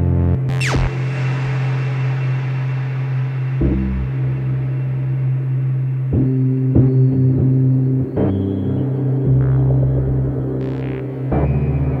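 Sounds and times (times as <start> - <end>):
synthesizer low drone with reverb: 0.0 - 12.0.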